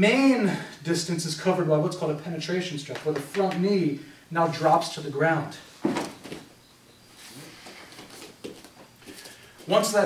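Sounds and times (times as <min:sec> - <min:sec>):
rustling and shuffling on mats: 0:05.6 - 0:10.0.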